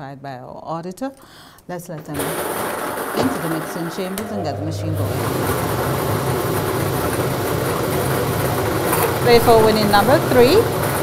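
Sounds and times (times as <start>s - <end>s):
lottery balls tumbling: 1.9s - 11.0s
mechanical hum: 1.9s - 11.0s.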